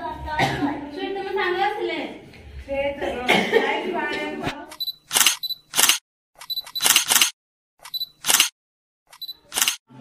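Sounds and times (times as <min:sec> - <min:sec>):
camera focus beep: 0:04.7 - 0:08.5, 0:09.1 - 0:09.8
camera shutter click: 0:05.1 - 0:09.8.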